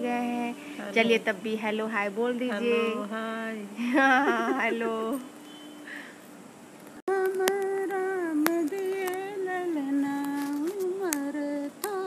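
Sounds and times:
elderly woman singing unaccompanied: 0.0s - 5.4s, 7.1s - 12.0s.

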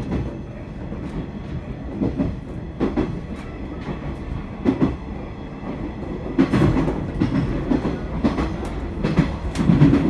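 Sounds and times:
train running rumble: 0.0s - 10.0s.

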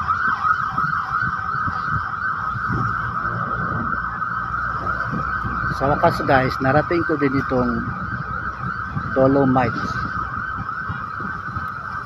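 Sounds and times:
wind buffeting microphone: 0.0s - 12.0s
high-pitched drone: 1.9s - 9.3s.

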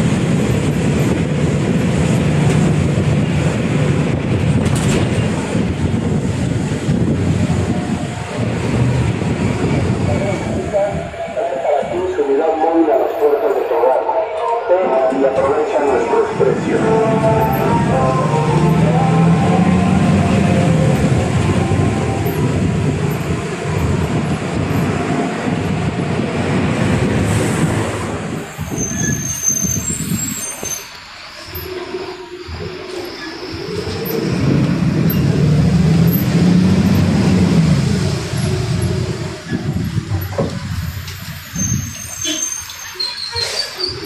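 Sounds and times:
bus diesel engine: 0.0s - 44.0s
brake squeal: 28.5s - 34.5s, 39.5s - 44.0s.

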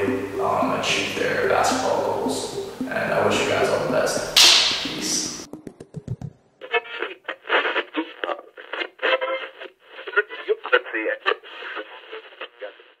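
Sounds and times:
person talking through a speaker: 0.0s - 5.5s.

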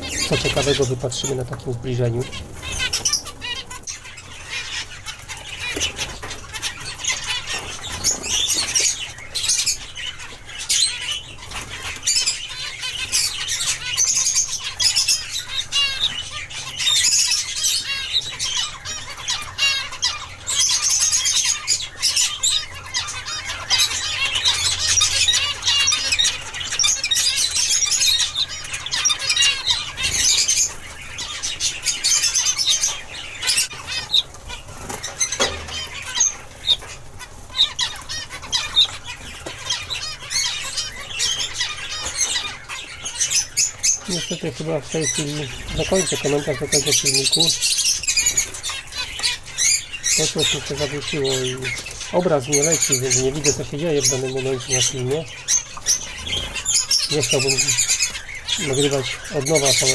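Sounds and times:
zebra finches twittering: 0.0s - 59.9s.

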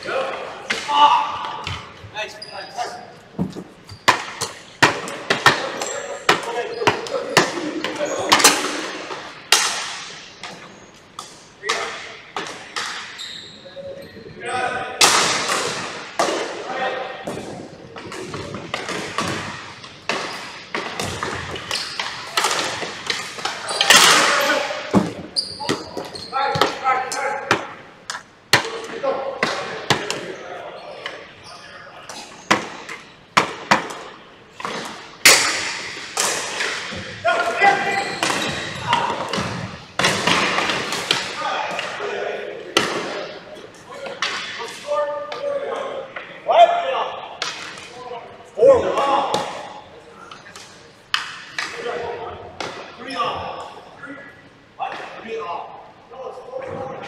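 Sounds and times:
players shouting: 0.0s - 3.1s
sticks striking ball and floor: 3.4s - 10.6s, 17.3s - 26.8s, 32.4s - 37.1s.

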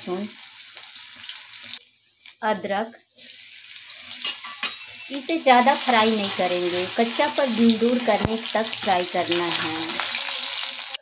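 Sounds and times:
spices sizzling in hot oil: 0.0s - 11.0s.

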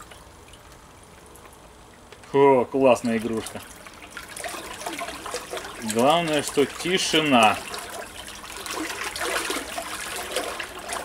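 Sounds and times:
water churning and splashing: 2.8s - 11.0s.

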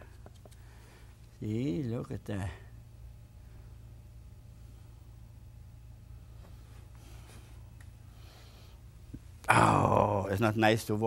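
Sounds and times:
low steady hum: 0.0s - 11.0s
man speaking: 1.4s - 2.8s, 9.5s - 11.0s
man's drawn-out vocal sound: 9.4s - 10.3s.

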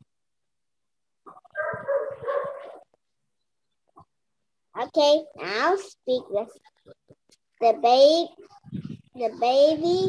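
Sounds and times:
dog barking: 1.5s - 2.9s.

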